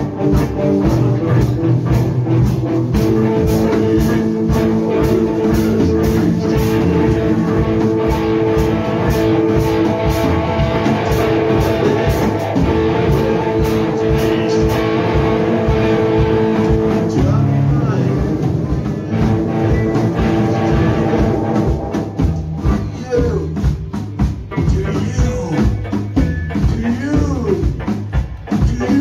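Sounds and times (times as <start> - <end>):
drum beat: 0.0 - 29.0
rock guitar chords: 0.0 - 29.0.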